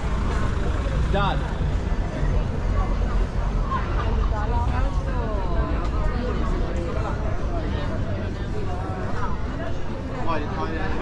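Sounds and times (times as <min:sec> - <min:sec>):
cars passing on cobblestones: 0:00.0 - 0:10.1.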